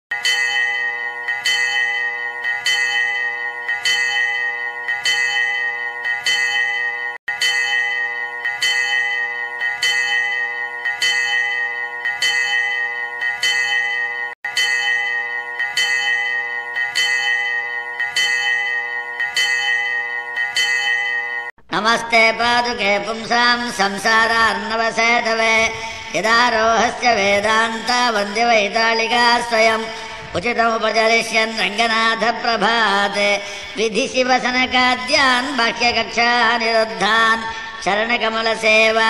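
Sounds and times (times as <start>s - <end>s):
bell ringing: 0.1s - 21.5s.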